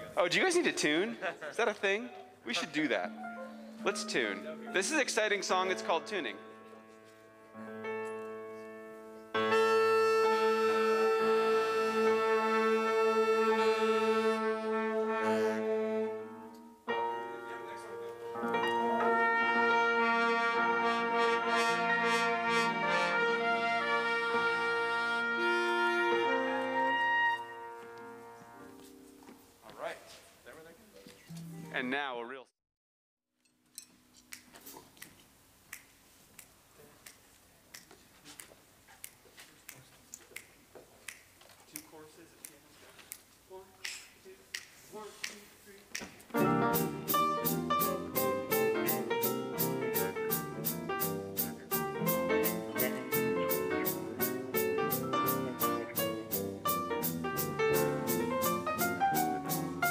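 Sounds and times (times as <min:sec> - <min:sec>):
jazz big band playing: 0:02.5 - 0:06.8, 0:09.3 - 0:29.2, 0:46.3 - 0:59.9.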